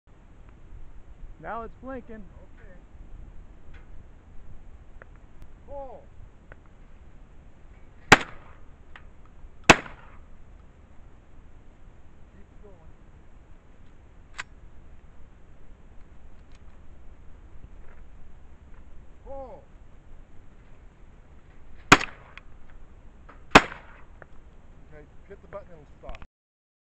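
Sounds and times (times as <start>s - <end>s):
shotgun shots: 8.0s - 8.6s, 9.6s - 10.3s, 21.8s - 22.4s, 23.5s - 24.1s.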